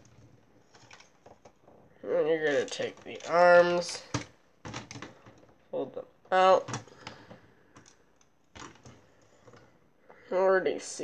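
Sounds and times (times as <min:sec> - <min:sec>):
plastic toy parts clicking: 0:00.0 - 0:01.7, 0:02.4 - 0:05.5, 0:06.4 - 0:09.6.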